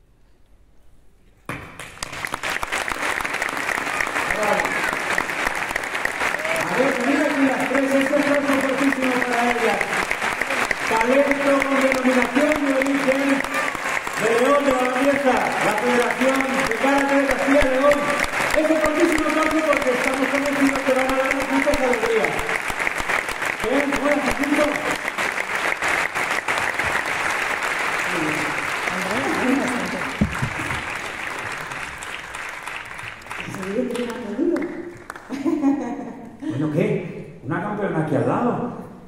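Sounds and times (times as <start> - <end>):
audience applauding: 1.8 - 35.9.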